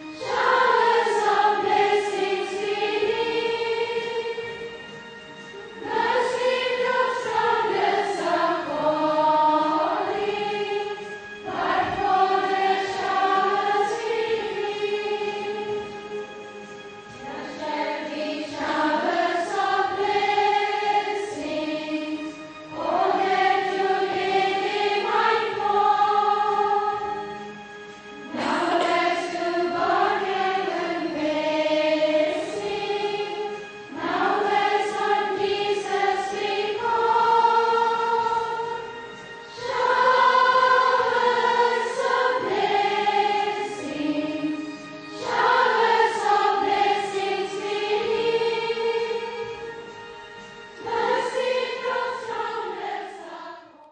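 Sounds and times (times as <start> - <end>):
choir singing held notes: 0.0 - 53.9.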